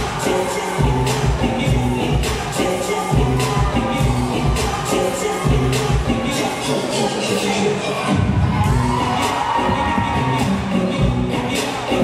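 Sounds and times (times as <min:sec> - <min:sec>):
audience cheering and shouting: 0:00.0 - 0:12.0
loud dance music: 0:00.0 - 0:12.0.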